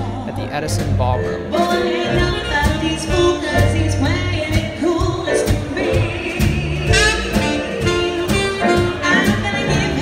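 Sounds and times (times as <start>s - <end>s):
woman singing: 0.0s - 0.4s, 1.4s - 10.0s
bass notes: 0.0s - 10.0s.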